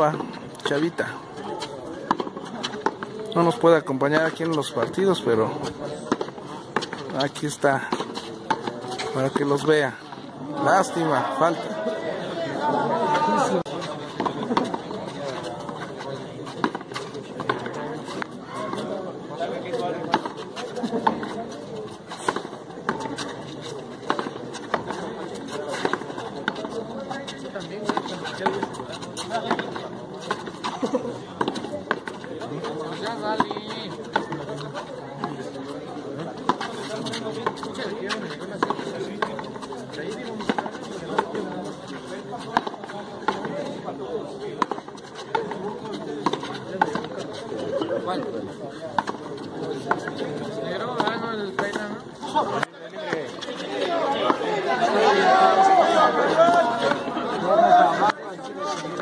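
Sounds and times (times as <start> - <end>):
murmur of spectators: 0.0 - 59.0.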